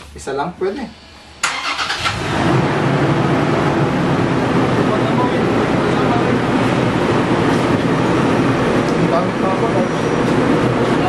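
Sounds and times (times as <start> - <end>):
car engine starting and idling: 0.9 - 11.0.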